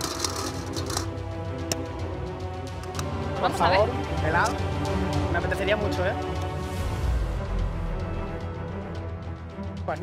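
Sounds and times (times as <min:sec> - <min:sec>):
balls clicking in glass bowl: 0:00.0 - 0:01.1
background music with bass: 0:00.0 - 0:10.0.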